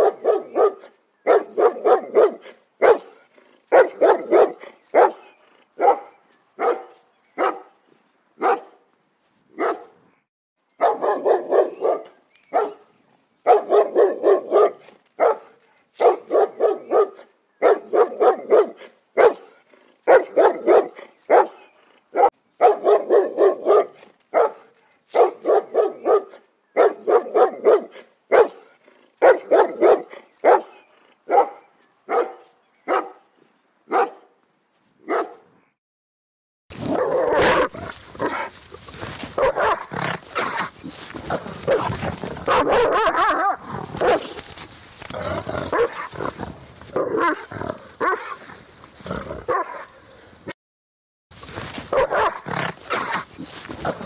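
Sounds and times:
dog barking: 0.0 - 7.8, 8.4 - 8.8, 9.6 - 10.0, 10.8 - 33.2, 33.9 - 34.4, 35.0 - 35.5, 36.8 - 46.2, 46.9 - 48.5, 49.1 - 50.3, 51.7 - 54.0
rough dense dog sounds: 0.0 - 35.8, 36.7 - 50.6, 51.3 - 54.0.

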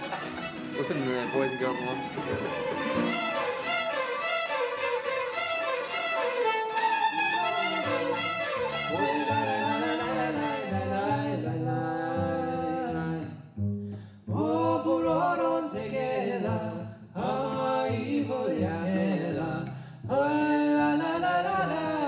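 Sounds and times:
bowed strings playing fast tune: 0.0 - 11.0
men singing long notes: 7.2 - 13.2.

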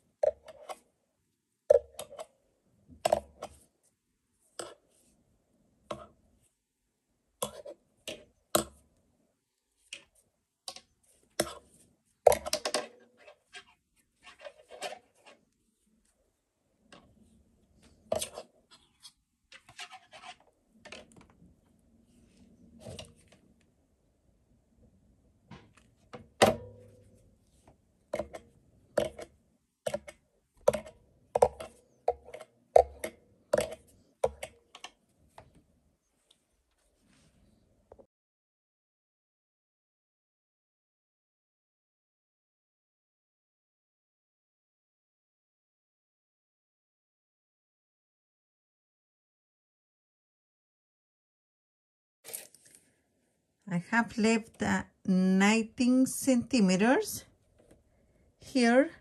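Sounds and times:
hands handling crocheted flower: 52.3 - 53.0.

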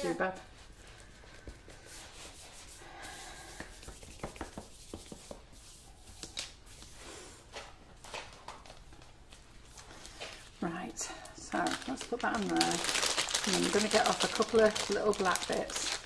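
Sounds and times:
hands rubbing sugarpaste: 0.7 - 7.1.

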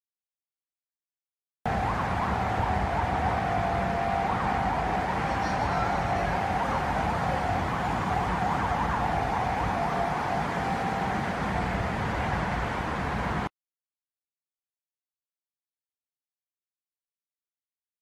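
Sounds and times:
steady high tone: 1.7 - 12.4
traffic engines rumbling: 1.7 - 13.5.

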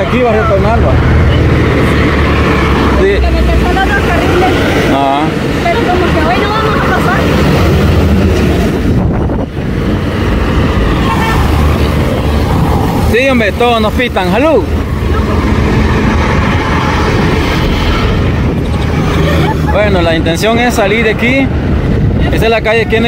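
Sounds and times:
people's voices: 0.0 - 9.0, 10.7 - 23.0
highway traffic passing: 0.0 - 23.0.

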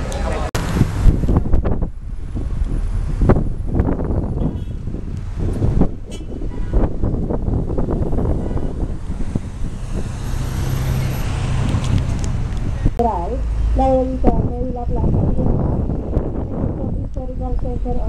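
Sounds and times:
bus engine rumble: 0.0 - 18.0
road traffic: 0.0 - 18.0.

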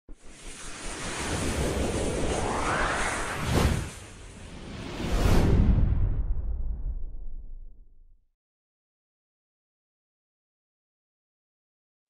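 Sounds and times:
rushing whoosh: 0.2 - 7.3
low rumble: 1.3 - 8.2.

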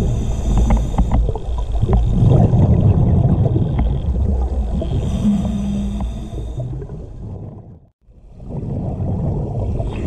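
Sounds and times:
steady hum: 0.0 - 2.6, 4.6 - 6.8
underwater low rumble: 0.0 - 10.0.

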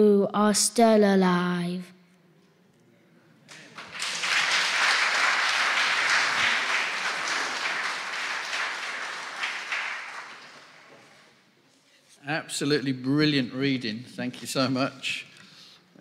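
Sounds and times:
congregation applauding: 3.5 - 11.4.

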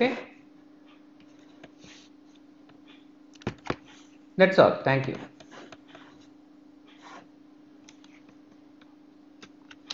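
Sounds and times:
faint steady hum: 0.0 - 9.9.

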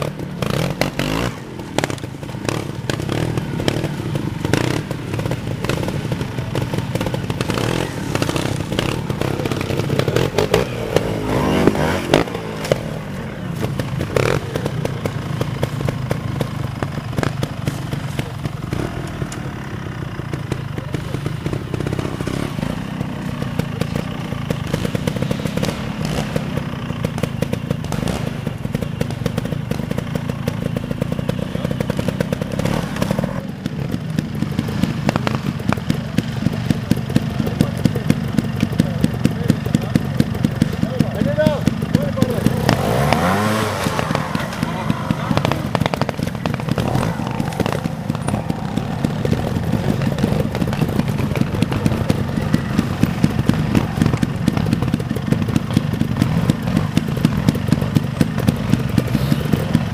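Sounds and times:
motorcycle engines revving: 0.0 - 59.9
motorcycles clattering on ground: 0.0 - 59.9.

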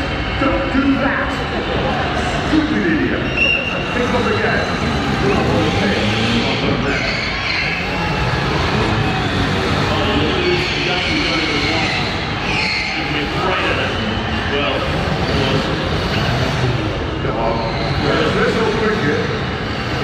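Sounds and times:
large crowd noise: 0.0 - 20.0
small car engines revving: 0.0 - 20.0.

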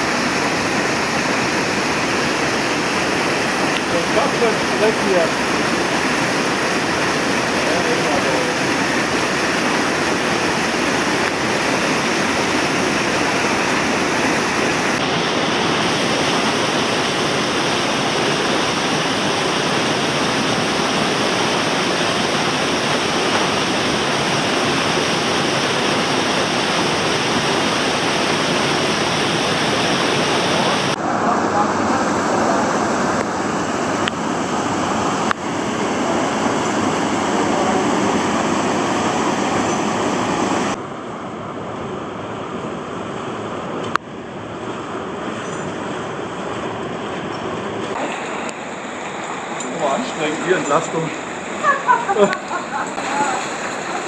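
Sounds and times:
waterfall rushing: 0.0 - 40.8, 42.3 - 54.0.

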